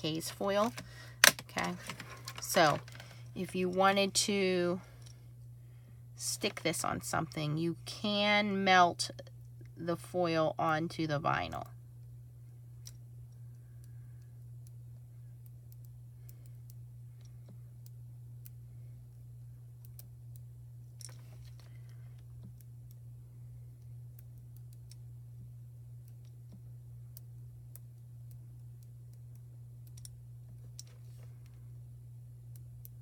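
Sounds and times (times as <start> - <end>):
steady low hum: 0.0 - 33.0
small clicks and ticks: 12.8 - 31.8, 32.4 - 33.0.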